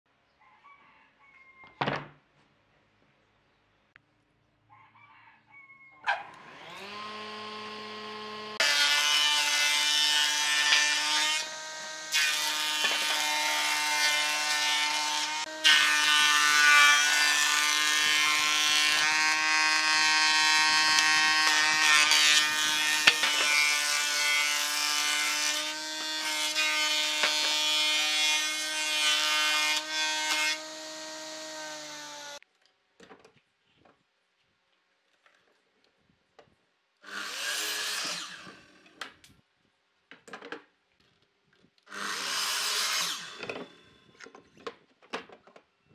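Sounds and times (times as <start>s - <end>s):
planer motor whine: 6.3s - 8.9s
cutter head planing boards: 6.3s - 32.4s, 37.0s - 39.2s, 41.9s - 44.7s.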